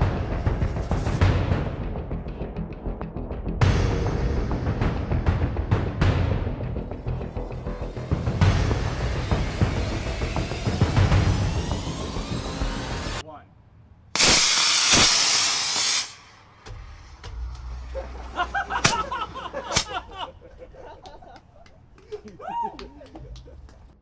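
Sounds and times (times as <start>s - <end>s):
music with heavy low drums: 0.0s - 13.2s
firework fountain hissing: 7.0s - 13.2s, 14.2s - 16.5s.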